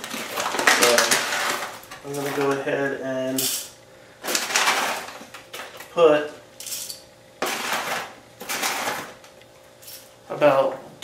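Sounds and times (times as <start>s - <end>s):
coffee beans rattling into grinder: 0.0s - 2.6s, 3.4s - 5.7s, 6.6s - 9.2s.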